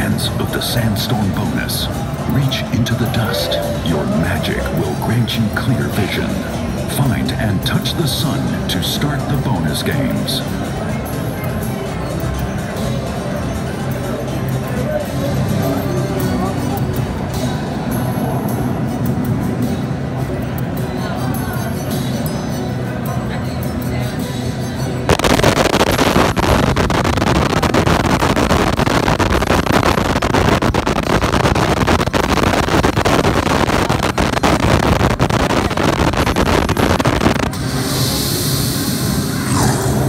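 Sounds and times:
slot machine game music: 2.3s - 6.3s
loud rushing wind-like noise: 25.1s - 40.0s.

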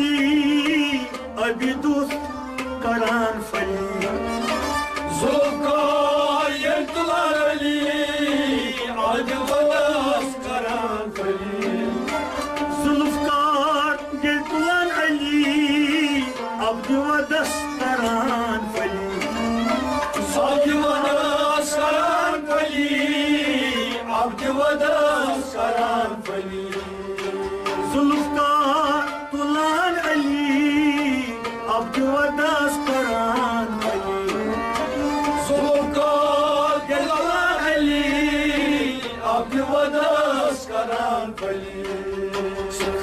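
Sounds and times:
harmonium: 0.0s - 43.0s
men singing chant-like refrain: 0.0s - 43.0s.

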